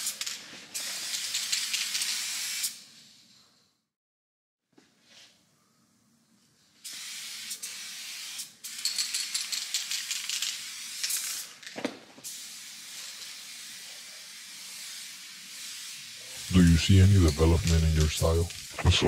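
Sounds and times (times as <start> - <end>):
spray paint can hissing: 0.0 - 3.3, 6.8 - 18.9.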